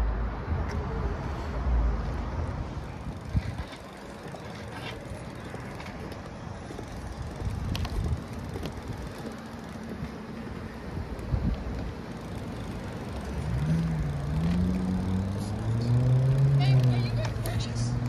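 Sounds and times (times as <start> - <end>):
passing cars: 0.0 - 18.0
vehicle engine hum: 0.0 - 18.0.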